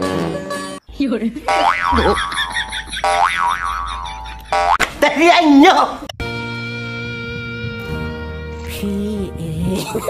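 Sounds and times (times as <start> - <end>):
person laughing: 1.6 - 4.8, 9.7 - 10.0.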